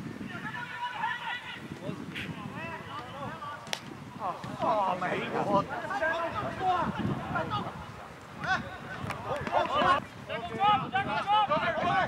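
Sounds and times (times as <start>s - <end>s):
footballers shouting: 0.1s - 12.0s.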